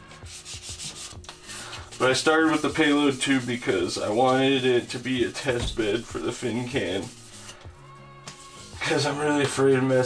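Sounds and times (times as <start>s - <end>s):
sanding sponge rubbing paint: 0.2s - 7.6s, 8.4s - 9.0s.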